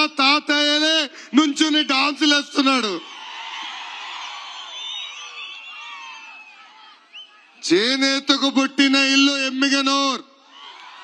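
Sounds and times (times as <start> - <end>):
crowd cheering and whooping: 3.0 - 7.4, 10.5 - 11.0.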